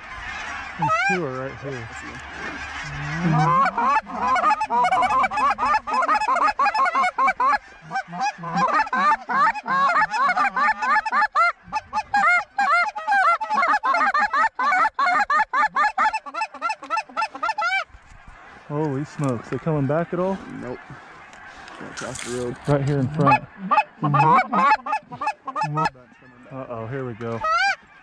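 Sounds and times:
geese honking: 0:00.0 - 0:28.0.

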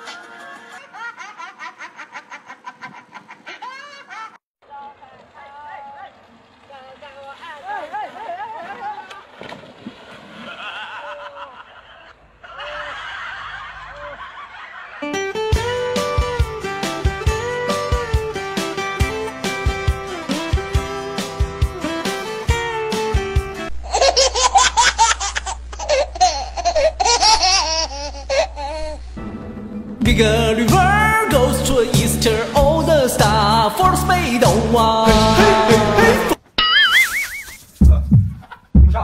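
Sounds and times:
person laughing hard: 0:00.7 - 0:04.4, 0:10.5 - 0:15.1, 0:23.8 - 0:29.0, 0:35.1 - 0:36.9
water splashing and sloshing: 0:04.8 - 0:10.8
person's voice: 0:30.0 - 0:36.4.

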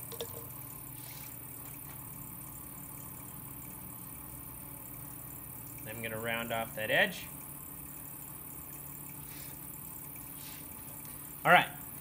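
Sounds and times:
potter's wheel motor hum: 0:00.0 - 0:12.0.

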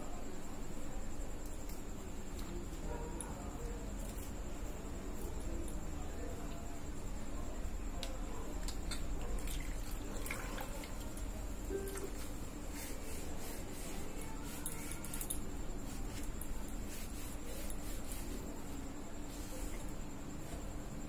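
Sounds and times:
faint music: 0:00.0 - 0:21.0
cloth rubbing on vegetable stalk: 0:12.2 - 0:20.0.

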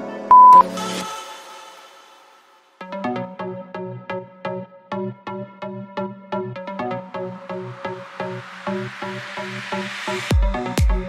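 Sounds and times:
background music: 0:00.0 - 0:11.0
long electronic timer beep: 0:00.3 - 0:00.6.

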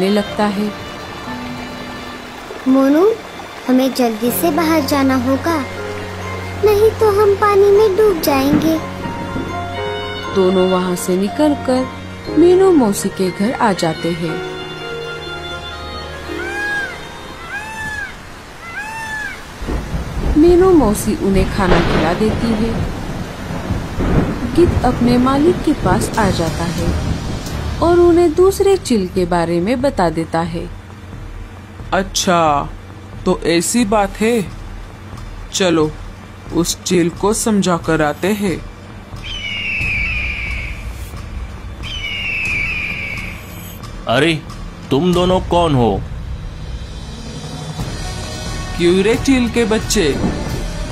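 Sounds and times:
rain: 0:00.0 - 0:50.9
low rumble of thunder: 0:06.9 - 0:10.0, 0:19.6 - 0:50.9
bird of prey screeching: 0:16.2 - 0:19.6, 0:39.2 - 0:41.1, 0:41.8 - 0:43.8
cartoon meow-like call: 0:16.3 - 0:19.6
steady low rumble: 0:40.0 - 0:50.9.

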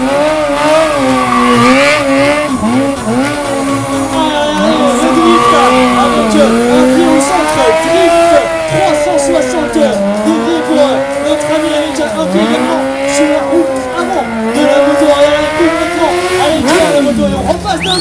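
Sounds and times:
motorcycle engine revving: 0:00.0 - 0:18.0.

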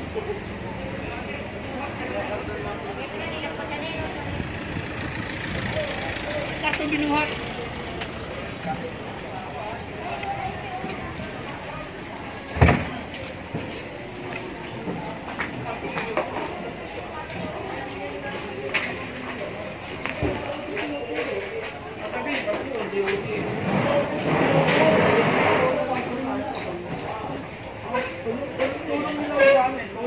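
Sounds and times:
people talking: 0:00.0 - 0:30.0
street din: 0:00.0 - 0:30.0.

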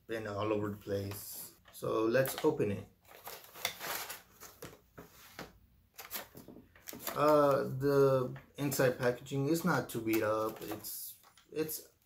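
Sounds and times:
cardboard box and plastic crinkling: 0:02.2 - 0:04.8, 0:06.0 - 0:07.6, 0:10.0 - 0:11.4.

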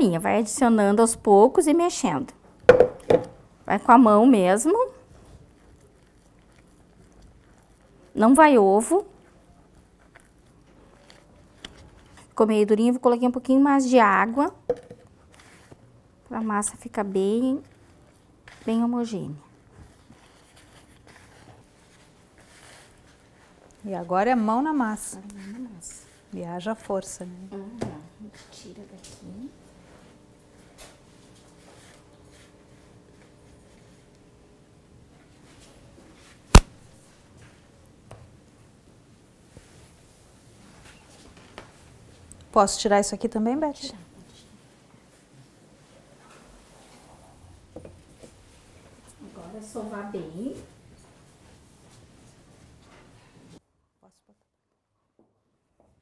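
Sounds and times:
knock on kitchen worktop: 0:02.7 - 0:03.4, 0:14.7 - 0:15.0
hands mixing dough in plastic bowl: 0:04.3 - 0:12.4, 0:16.5 - 0:26.4.

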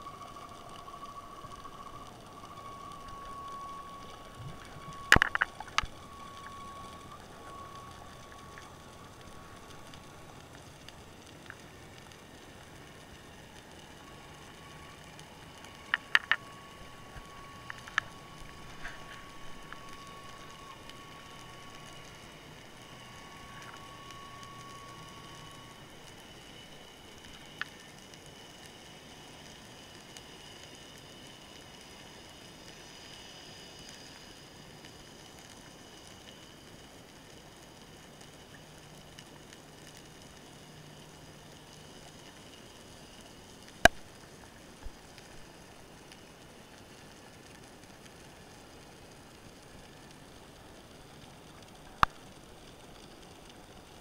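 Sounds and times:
faint underwater hiss: 0:00.0 - 0:54.0
faint whining tones: 0:00.0 - 0:54.0.

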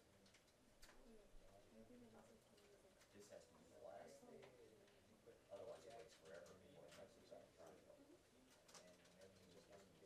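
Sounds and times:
faint low voice murmuring: 0:00.2 - 0:10.0.

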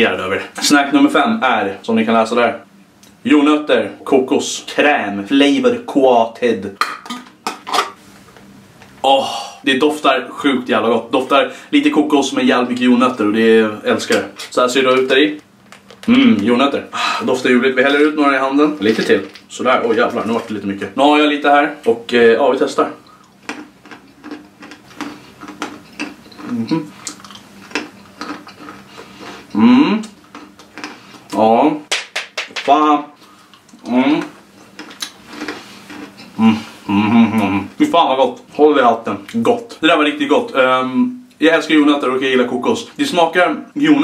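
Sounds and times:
crunchy peanuts being chewed: 0:23.0 - 0:31.4, 0:33.5 - 0:36.6.

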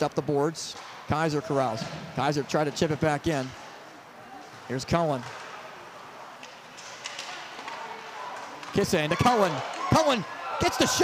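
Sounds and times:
hockey sticks clicking on puck: 0:04.4 - 0:11.0.

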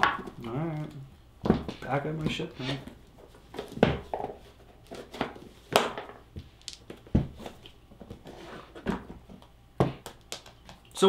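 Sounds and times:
cards tapping: 0:08.8 - 0:10.8.

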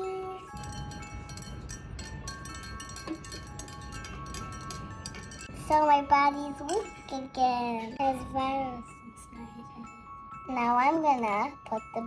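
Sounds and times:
glockenspiel and chime music: 0:00.0 - 0:12.0.

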